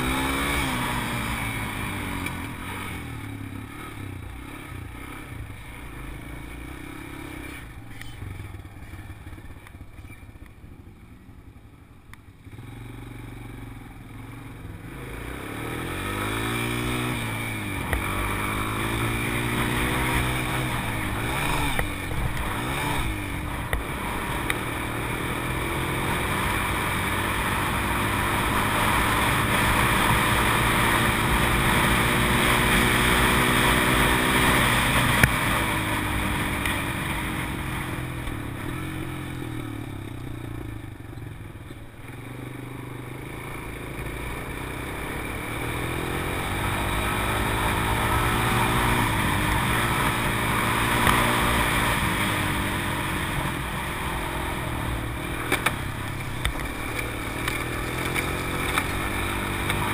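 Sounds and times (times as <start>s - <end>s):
quad bike engine revving: 0.0s - 9.9s, 12.5s - 59.9s.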